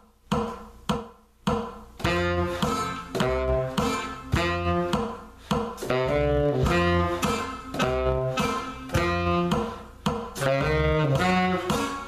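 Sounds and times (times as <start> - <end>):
saxophone short notes: 2.0 - 5.2, 5.8 - 9.8, 10.4 - 12.0.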